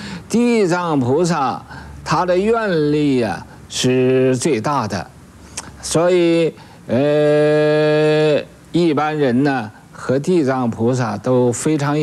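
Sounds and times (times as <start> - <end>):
man speaking: 0.3 - 5.2, 5.8 - 12.0.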